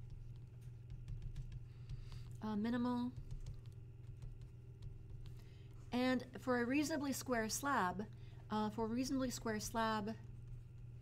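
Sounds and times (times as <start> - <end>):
stylus tapping on tablet screen: 0.0 - 5.8
low steady hum: 0.0 - 11.0.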